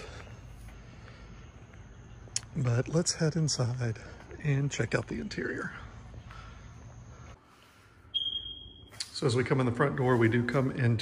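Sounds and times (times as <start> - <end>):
high-pitched electronic beep: 8.1 - 9.0.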